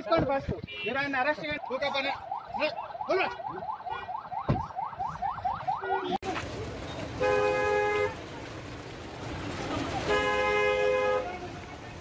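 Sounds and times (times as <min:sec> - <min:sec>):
electronic siren sweeping: 0:01.6 - 0:06.1.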